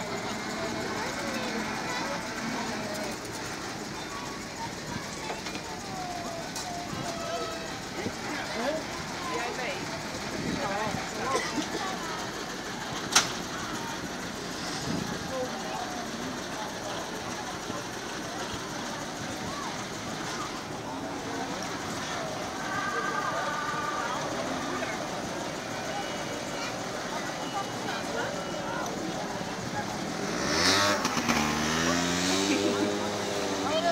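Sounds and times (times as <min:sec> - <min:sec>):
truck engine revving: 0:00.0 - 0:22.6, 0:24.0 - 0:33.9
crowd chatter with children: 0:00.0 - 0:33.9.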